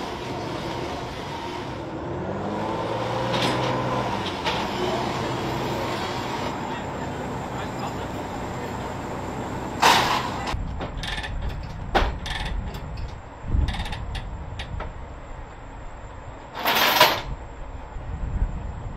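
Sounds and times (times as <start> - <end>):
outdoor rumble: 0.0 - 18.9
metal chains clinking: 16.6 - 17.3.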